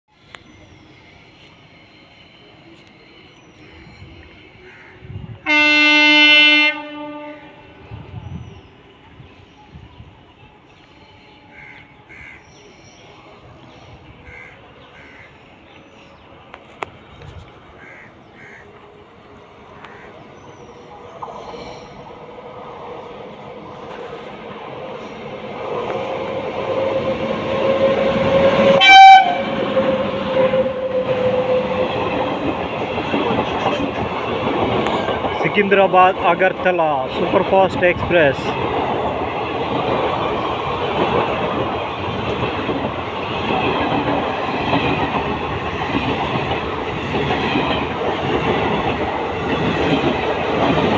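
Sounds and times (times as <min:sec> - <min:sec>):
train coaches rumbling past: 0:00.1 - 0:50.9
locomotive air horn blast: 0:05.4 - 0:07.6, 0:27.8 - 0:31.7
electric locomotive running: 0:07.5 - 0:50.9.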